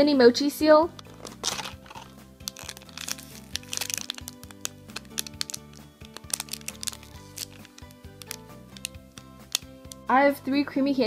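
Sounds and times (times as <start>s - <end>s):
background music with held notes: 0.0s - 11.0s
plastic packaging crinkling: 0.9s - 10.1s.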